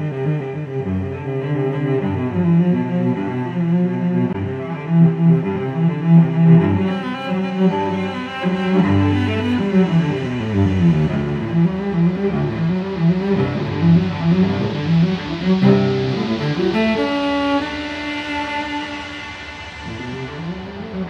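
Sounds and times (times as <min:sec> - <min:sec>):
instrumental background music: 0:00.0 - 0:21.0.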